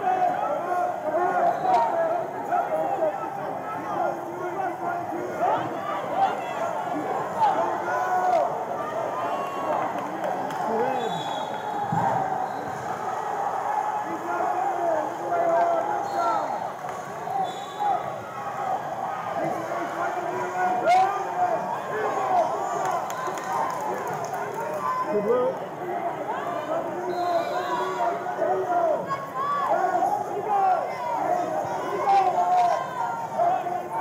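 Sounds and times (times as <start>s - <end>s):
people shouting and calling out: 0.0s - 34.0s.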